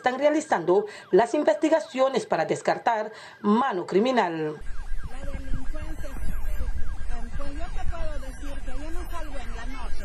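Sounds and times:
siren yelping: 0.0 - 10.0
low rumble: 4.6 - 10.0
faint voices: 5.0 - 10.0.

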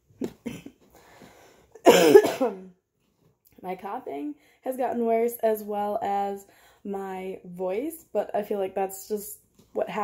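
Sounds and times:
woman coughing harshly: 1.8 - 2.7.

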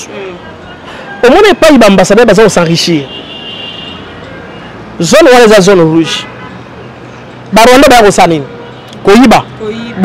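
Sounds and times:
city traffic: 0.0 - 10.0.

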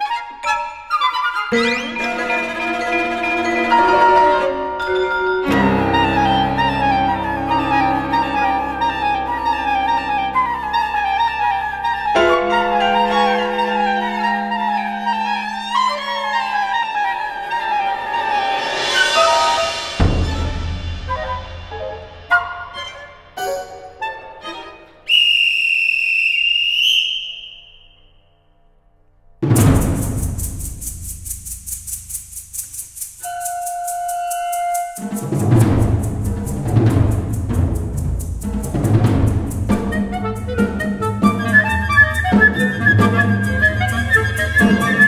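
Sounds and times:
classical chamber music: 0.0 - 25.6, 29.4 - 45.0.

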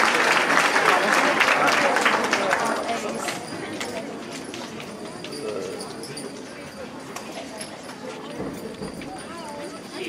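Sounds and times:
murmur of audience chatting: 0.0 - 10.0.

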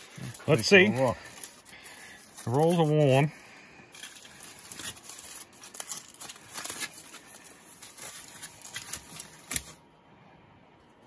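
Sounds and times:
aluminium foil crinkling: 0.0 - 9.8.

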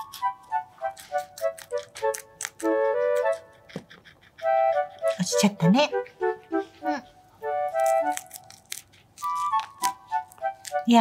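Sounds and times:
guinea pig crunching vegetable: 0.0 - 11.0
light background music: 0.0 - 11.0.

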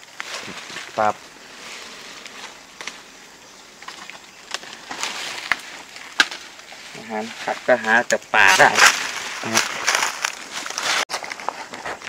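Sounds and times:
leaves rustling: 0.0 - 12.0
stems snapping: 2.2 - 3.1, 3.8 - 6.8, 7.6 - 11.5.

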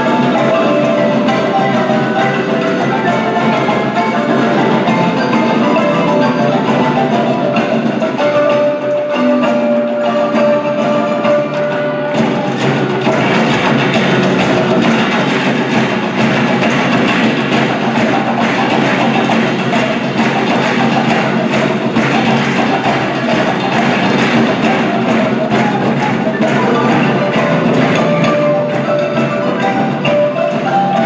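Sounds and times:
hand percussion: 0.0 - 31.0
marimba playing: 0.0 - 31.0.

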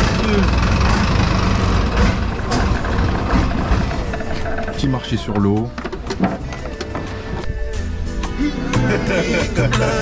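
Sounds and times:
boat engine low rumble: 0.0 - 7.8.

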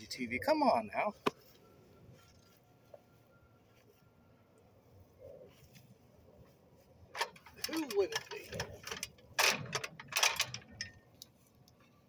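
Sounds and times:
metal ladder rattling and clanking: 7.2 - 11.0.

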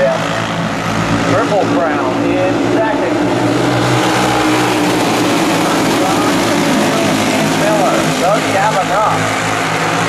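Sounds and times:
racing kart engines droning: 0.0 - 10.0.

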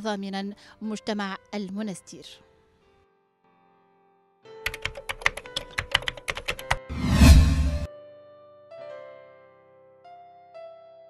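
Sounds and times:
keyboard-like typing clicks: 4.7 - 6.8.

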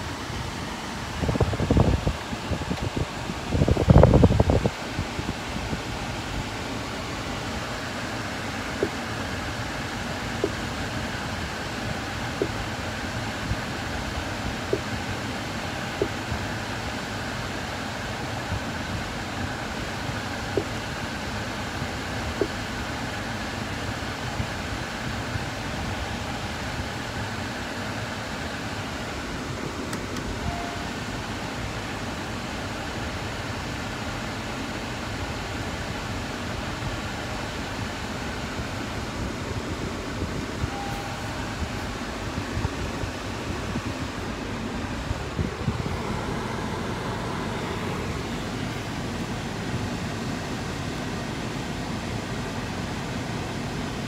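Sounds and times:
climate control fan rushing: 0.0 - 54.0
short soft beeps: 30.3 - 30.9, 40.7 - 41.5.

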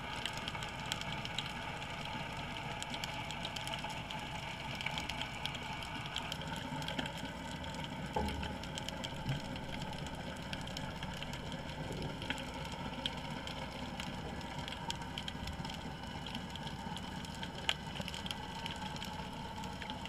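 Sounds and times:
underwater hiss and rumble: 0.0 - 20.0
faint crackling clicks: 4.7 - 20.0.

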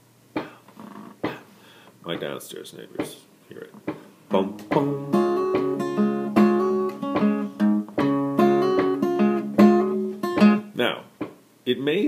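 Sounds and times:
foot tapping on floor: 3.8 - 10.6, 11.2 - 11.4.

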